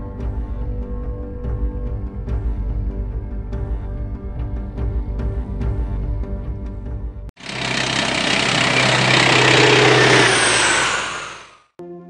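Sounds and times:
engine-like rushing roar: 7.4s - 11.7s.

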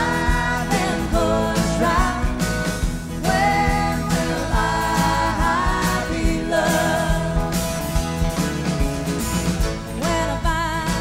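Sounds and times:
woman singing with vibrato: 0.0s - 7.7s, 10.0s - 11.0s
live country-rock band playing: 0.0s - 11.0s.

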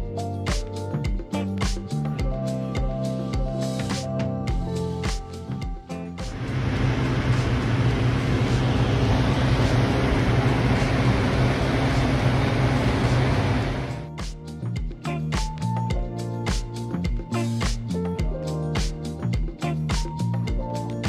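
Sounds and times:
music: 0.0s - 21.0s
propane burner blasting: 6.3s - 14.1s.

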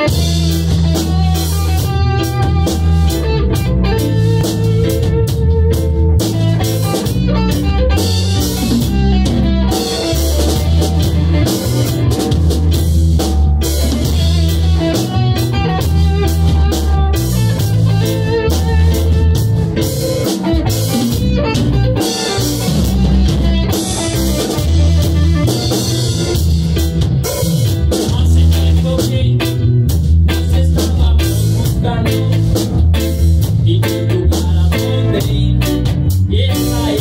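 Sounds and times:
drum and cymbal hits: 0.0s - 29.2s
electric guitar: 0.0s - 37.0s
low bass guitar notes: 0.0s - 37.0s.

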